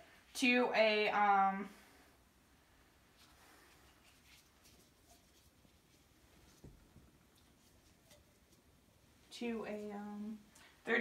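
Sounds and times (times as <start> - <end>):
gloved hands rustling plastic syringe: 3.0 - 10.8.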